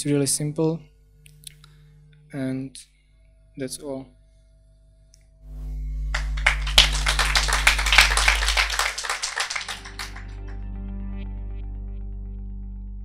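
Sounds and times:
audience applauding: 6.1s - 10.6s.

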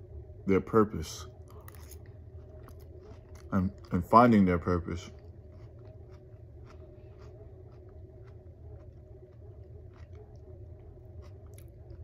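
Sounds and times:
steady low hum: 0.0s - 12.0s
person chewing food: 1.4s - 12.0s.

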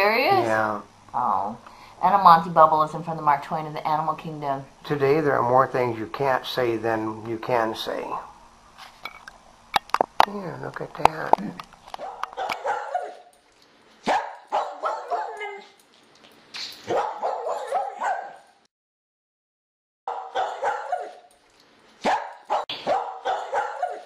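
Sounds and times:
dog barking and yipping: 12.0s - 13.4s, 14.0s - 15.9s, 16.8s - 18.6s, 20.1s - 21.4s, 22.0s - 24.0s.

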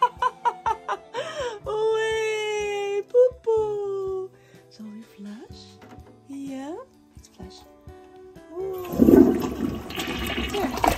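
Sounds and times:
toilet flushing: 8.8s - 10.9s.

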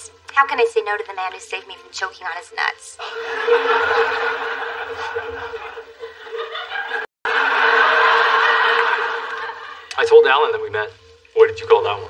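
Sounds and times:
studio audience laughing: 3.0s - 10.0s.

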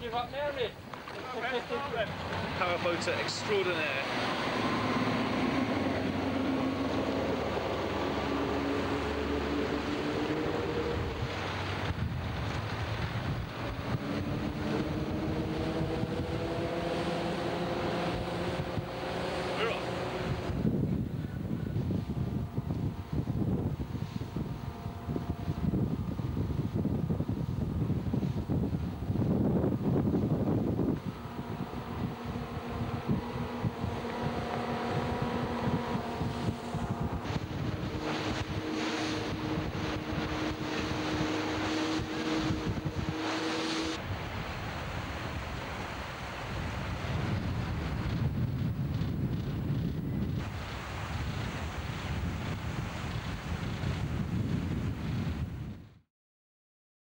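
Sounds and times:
boat engines droning: 0.0s - 54.8s
water rushing past hull: 0.0s - 55.7s
wind buffeting microphone: 0.0s - 56.0s.

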